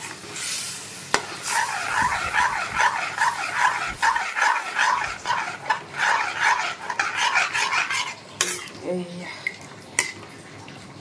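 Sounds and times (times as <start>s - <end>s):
metal spoon scraping metal pot: 1.4s - 8.8s.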